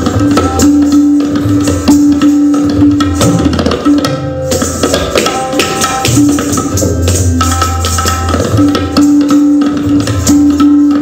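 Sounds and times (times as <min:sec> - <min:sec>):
tabla strokes: 0:00.0 - 0:11.0.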